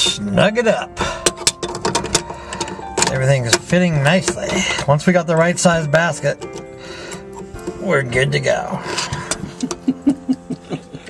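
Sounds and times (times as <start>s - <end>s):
pliers clicking against metal nut: 6.3s - 7.8s.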